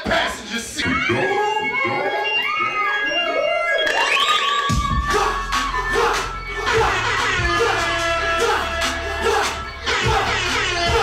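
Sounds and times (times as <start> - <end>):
hip-hop instrumental beat: 0.0 - 11.0
deep bass: 4.7 - 11.0.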